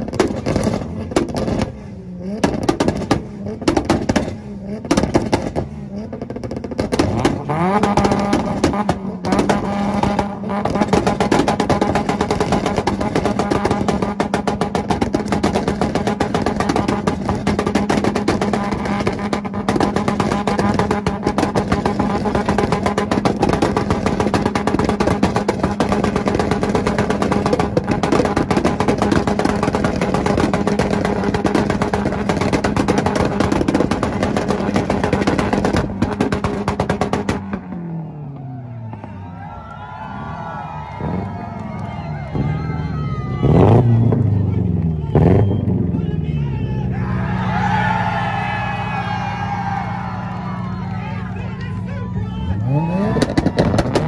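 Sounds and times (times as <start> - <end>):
high-revving car engine: 0.0 - 39.3, 40.8 - 54.0
exhaust popping and crackling: 0.0 - 46.2, 46.9 - 54.0.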